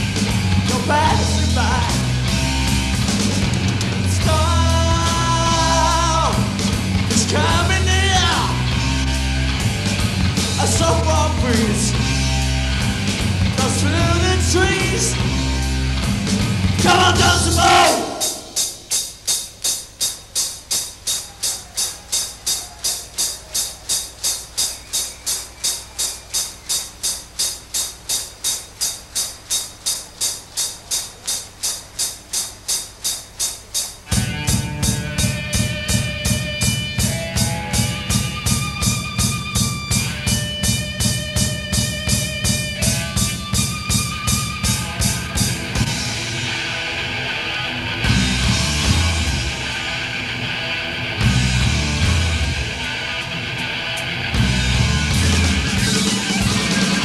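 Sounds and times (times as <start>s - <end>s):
bass and electric guitar melody: 0.0s - 18.6s, 34.1s - 57.0s
drum kit steady beat: 0.0s - 46.8s, 48.0s - 50.2s, 51.0s - 57.0s.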